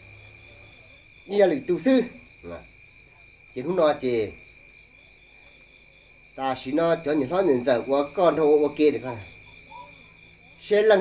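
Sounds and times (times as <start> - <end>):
crickets trilling: 0.0 - 11.0
man talking: 1.3 - 2.7, 3.6 - 4.4, 6.4 - 9.3, 10.6 - 11.0.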